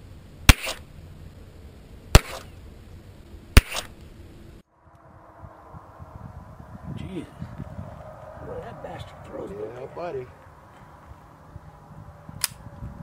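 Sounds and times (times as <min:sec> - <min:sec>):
pistol shots with echo: 0:02.2 - 0:02.5, 0:03.6 - 0:03.9.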